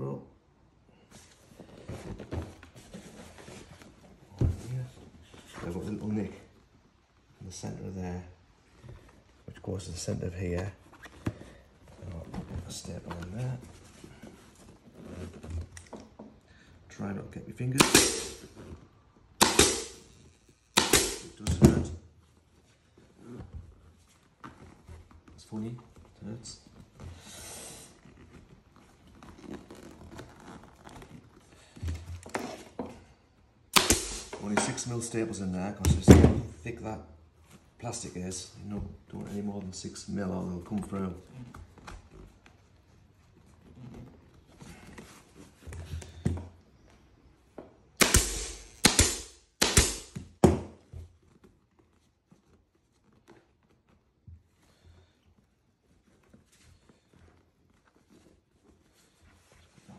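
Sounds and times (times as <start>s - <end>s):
vinyl cover rustling: 1.0s - 7.0s, 10.1s - 15.8s, 27.9s - 32.8s, 50.2s - 59.9s
seat cover rustling and scraping: 1.1s - 6.0s, 22.3s - 31.8s
pneumatic staple gun firing: 17.8s - 18.5s, 19.4s - 20.0s, 20.8s - 21.4s, 33.8s - 34.4s, 48.0s - 50.2s.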